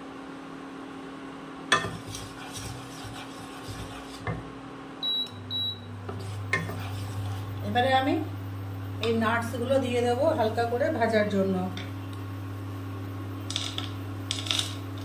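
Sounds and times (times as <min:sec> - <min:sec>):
cooktop hum: 0:00.0 - 0:15.0
deep steady hum: 0:01.4 - 0:15.0
wooden spatula scraping pan: 0:01.8 - 0:04.4, 0:06.1 - 0:07.6
cooktop beeps: 0:05.0 - 0:06.0.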